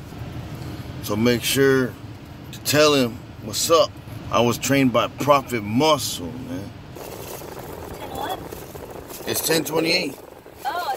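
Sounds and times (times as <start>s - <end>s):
car cabin background noise: 0.0s - 10.9s.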